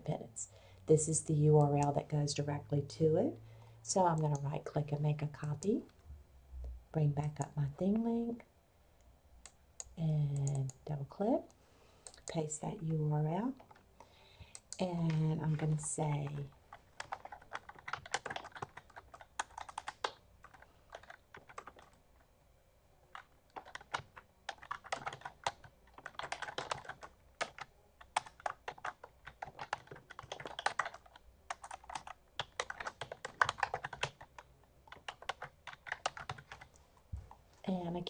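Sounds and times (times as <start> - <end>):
typing on a computer keyboard: 14.4 - 22.0, 23.1 - 36.7.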